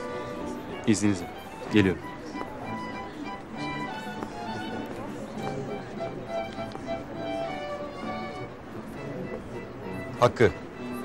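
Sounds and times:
crowd chatter: 0.0 - 11.0
violin playing held notes: 0.0 - 11.0.

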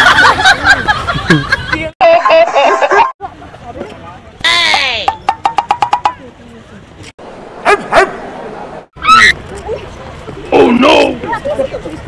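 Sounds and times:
dog barking: 7.6 - 8.2.

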